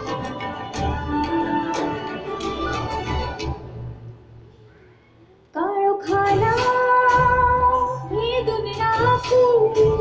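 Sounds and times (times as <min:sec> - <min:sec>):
musical accompaniment: 0:00.0 - 0:04.6, 0:06.1 - 0:10.0.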